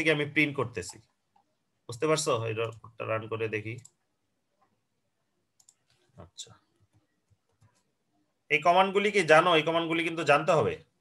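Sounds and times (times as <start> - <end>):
computer mouse clicks: 5.6 - 6.1, 6.8 - 7.9.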